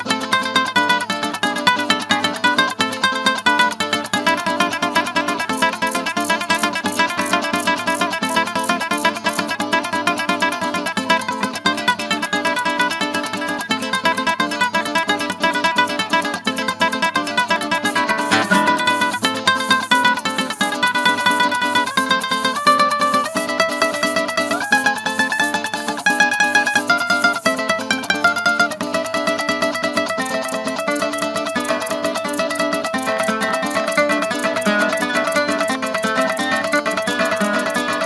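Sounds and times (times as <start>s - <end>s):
fast plucked string melody: 0.0s - 38.0s
strummed string accompaniment: 0.0s - 38.0s.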